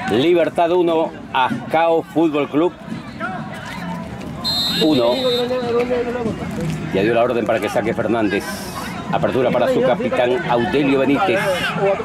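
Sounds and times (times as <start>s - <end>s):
referee's whistle blast: 4.4s - 5.7s.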